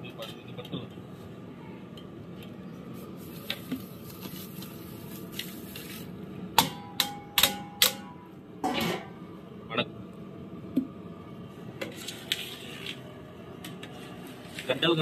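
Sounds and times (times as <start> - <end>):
metal scrape: 11.8 - 13.0.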